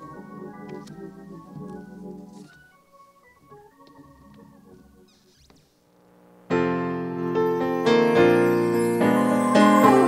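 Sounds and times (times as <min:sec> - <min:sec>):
organ playing soft chords: 0:00.0 - 0:05.5, 0:06.1 - 0:10.0.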